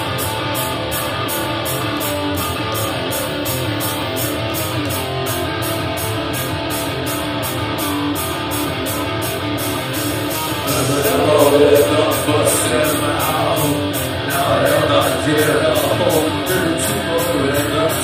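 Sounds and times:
electric guitar: 0:00.0 - 0:18.0
heavy rock band playing live: 0:00.0 - 0:18.0.

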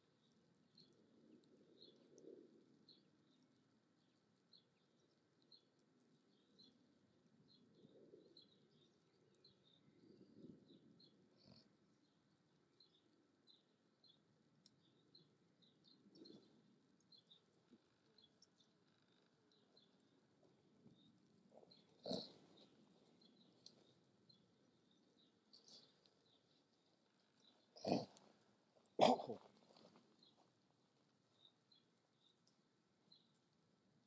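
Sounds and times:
short animal calls: 0:22.0 - 0:22.4, 0:27.8 - 0:28.2, 0:29.0 - 0:29.5.

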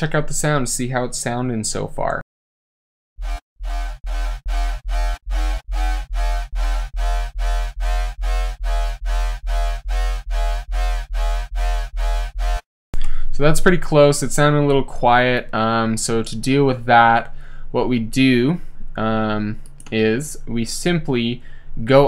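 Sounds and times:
distorted synth bass notes: 0:03.2 - 0:12.6.

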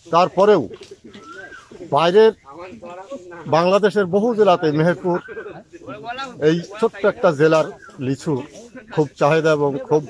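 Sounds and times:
man talking: 0:00.0 - 0:10.0
faint bird whistle: 0:01.1 - 0:01.9.

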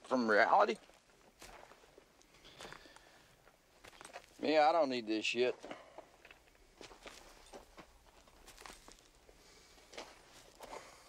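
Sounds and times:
soft footsteps: 0:00.8 - 0:04.6, 0:05.5 - 0:11.0.

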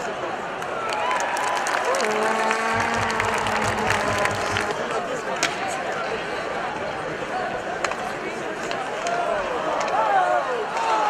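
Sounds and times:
crowd applauding and cheering: 0:00.8 - 0:05.0
steady low tone: 0:02.6 - 0:05.2
pulsing low thud: 0:02.7 - 0:05.0.

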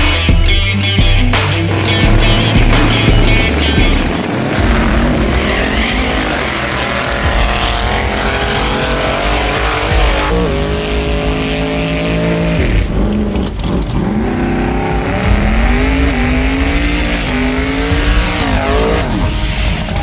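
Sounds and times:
rock music: 0:00.0 - 0:20.0
race car engines accelerating: 0:01.4 - 0:20.0.

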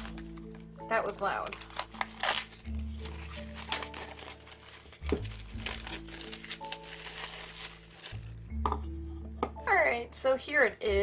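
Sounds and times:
plastic shrink-wrap crinkling: 0:00.0 - 0:08.4
background music: 0:00.0 - 0:11.0.

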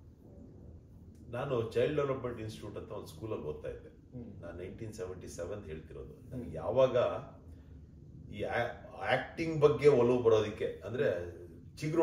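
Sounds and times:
man speaking: 0:01.3 - 0:07.4, 0:08.3 - 0:12.0.

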